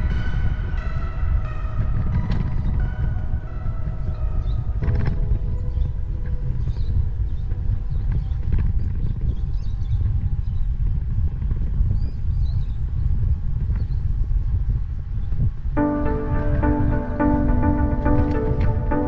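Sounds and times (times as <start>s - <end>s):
background music: 0.0s - 8.3s, 15.8s - 19.0s
wind buffeting microphone: 0.0s - 15.8s.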